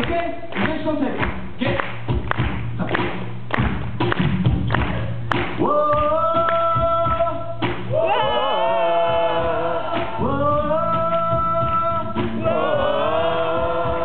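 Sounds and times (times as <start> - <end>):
steady beat of thumps: 0.0 - 8.1, 9.0 - 14.0
voices singing held notes: 8.0 - 14.0.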